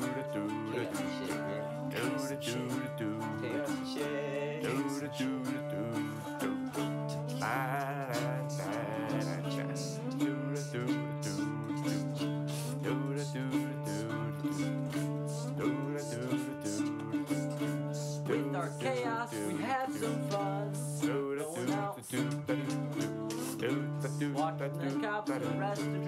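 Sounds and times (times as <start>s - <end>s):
light percussion beat: 0.0s - 13.6s, 16.8s - 26.0s
plucked guitar notes: 0.0s - 26.0s.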